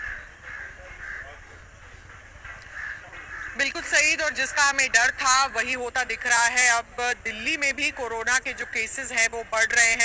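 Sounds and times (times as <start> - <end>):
bird calling: 0.0 - 5.7
street background rumble: 0.0 - 10.0.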